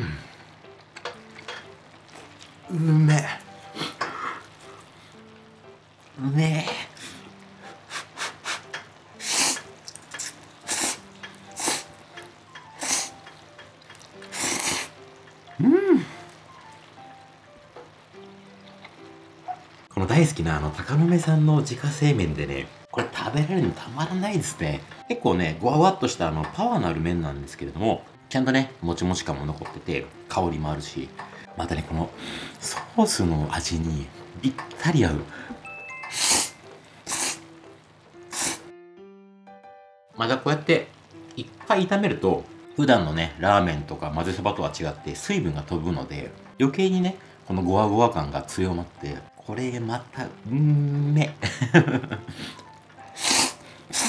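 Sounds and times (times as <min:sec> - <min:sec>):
quiet background music: 0:00.0 - 0:54.0
loud noodle slurping: 0:09.2 - 0:11.9, 0:12.8 - 0:13.2, 0:14.3 - 0:15.0, 0:36.1 - 0:37.5, 0:38.3 - 0:38.7, 0:53.2 - 0:54.0.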